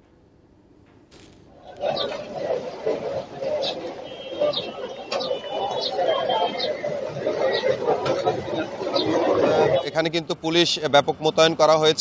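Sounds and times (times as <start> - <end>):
indistinct background voices: 1.5 - 10.3.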